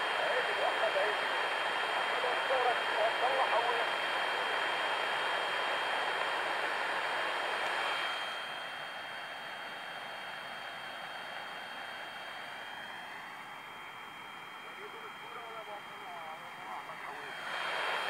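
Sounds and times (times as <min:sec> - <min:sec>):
radio static hiss: 0:00.0 - 0:18.0.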